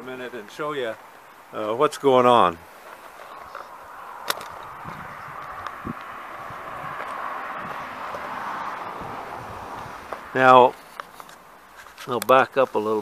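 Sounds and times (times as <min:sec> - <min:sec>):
steady rushing hiss: 0:00.0 - 0:13.0.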